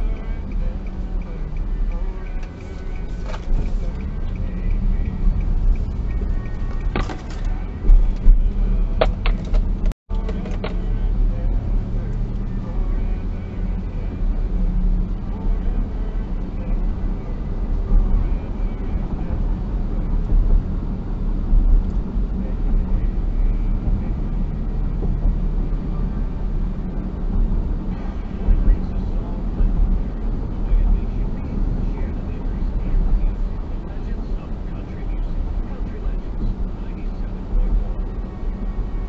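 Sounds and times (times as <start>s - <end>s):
car road and engine rumble: 0.0s - 39.0s.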